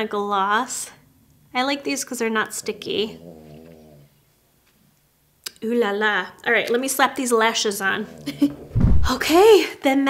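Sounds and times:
pet snoring: 1.9s - 4.3s, 7.5s - 8.7s.

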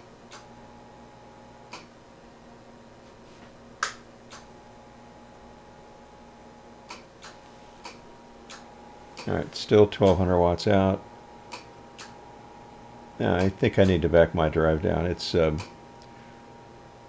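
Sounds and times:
faint steady hum: 0.0s - 17.0s
tuning knob clicks: 1.7s - 1.9s, 6.8s - 9.4s, 11.5s - 12.2s, 15.6s - 16.1s.

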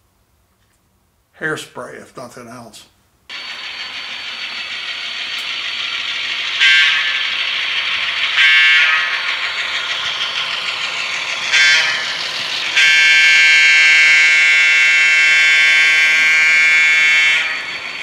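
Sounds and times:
model train whine: 3.3s - 18.0s
held horn tone: 6.4s - 9.9s, 11.3s - 18.0s
train horn blasts: 6.6s - 7.3s, 8.4s - 9.3s, 11.5s - 17.7s.

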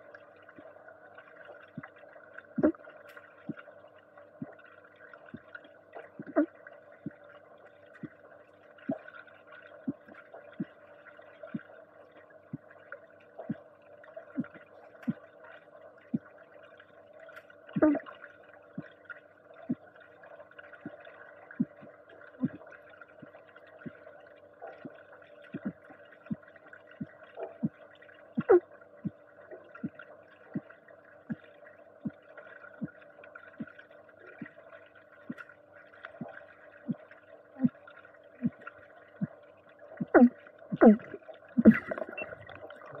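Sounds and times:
steady underwater hum: 0.0s - 43.0s
surges of moving water: 0.0s - 43.0s.

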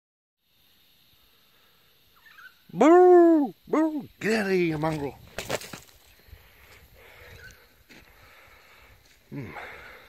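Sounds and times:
faint background hiss: 0.4s - 10.0s.

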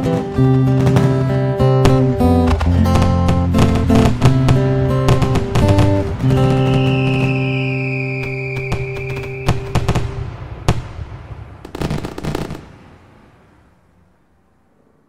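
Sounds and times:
strummed guitar chord: 0.0s - 6.8s
firework cracks and crackles: 0.3s - 14.2s
firework whistle: 2.5s - 11.0s.

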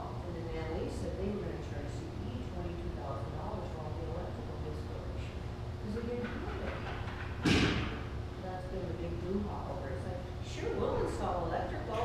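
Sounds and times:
faint voices in large room: 0.0s - 12.0s
steady low hum: 0.0s - 12.0s
sharp thump: 7.4s - 8.0s.

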